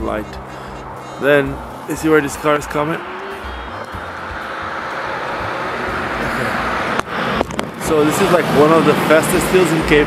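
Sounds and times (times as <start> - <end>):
car approaching: 0.0 - 10.0.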